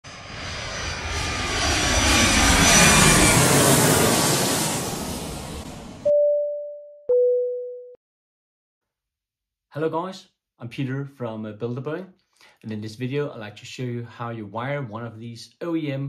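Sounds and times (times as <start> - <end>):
jet aircraft passing: 0.0 - 6.0
two-note chime: 6.1 - 8.0.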